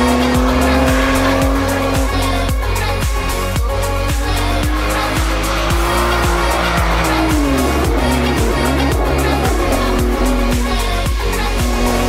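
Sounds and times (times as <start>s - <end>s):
music with steady beat: 0.0s - 12.0s
race car passing at speed: 4.6s - 10.7s.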